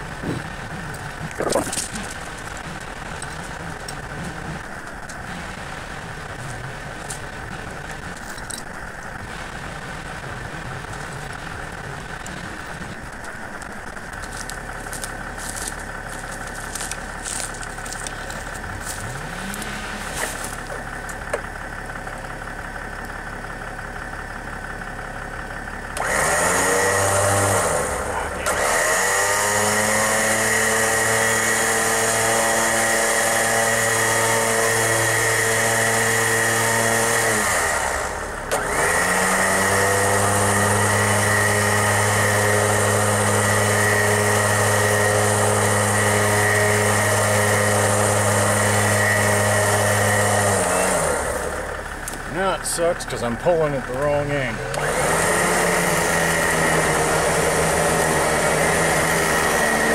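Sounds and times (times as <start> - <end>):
pickup truck engine idling: 0.0 - 26.2, 34.1 - 59.5
electric winch motor whining: 0.0 - 59.9.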